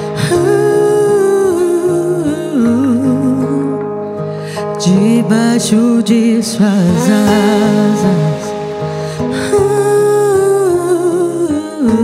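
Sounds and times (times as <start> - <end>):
soft instrumental accompaniment: 0.0 - 12.0
woman singing sustained note: 6.6 - 11.4
singer breath: 7.0 - 9.7.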